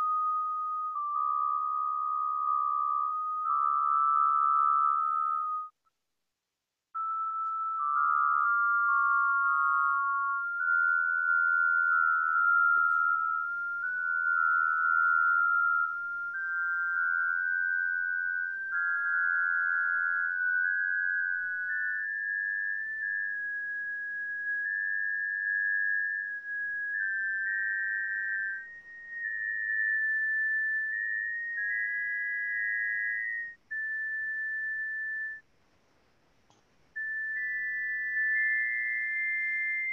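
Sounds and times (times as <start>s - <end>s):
sine tones stepping in pitch: 0.0s - 5.7s, 7.0s - 35.4s, 36.9s - 39.9s
small click: 36.4s - 36.7s.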